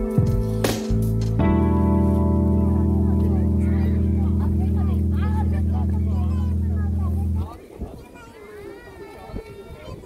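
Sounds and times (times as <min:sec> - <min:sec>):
crowd chatter: 0:00.0 - 0:10.0
loud low hum: 0:00.4 - 0:07.5.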